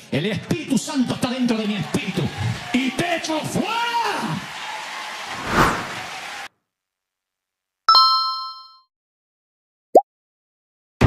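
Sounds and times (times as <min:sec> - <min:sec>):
short rising blip: 0:05.3 - 0:06.0.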